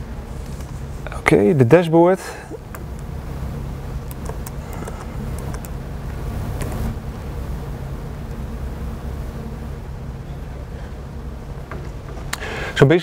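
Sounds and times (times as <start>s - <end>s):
room and equipment hum: 0.0s - 13.0s.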